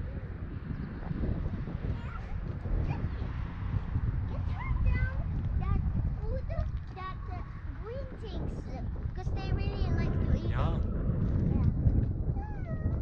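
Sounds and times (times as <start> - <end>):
wind on microphone: 0.0 - 13.0.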